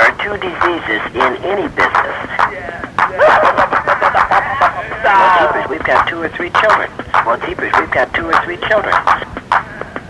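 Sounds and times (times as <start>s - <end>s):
voice speaking on old radio: 0.0s - 10.0s.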